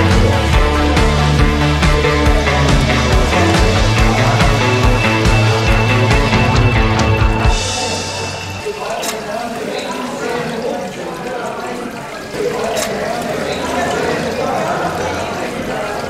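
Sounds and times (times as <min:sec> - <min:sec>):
background music: 0:00.0 - 0:09.6
background voices: 0:00.0 - 0:16.0
tap water running into steel sink: 0:00.0 - 0:16.0.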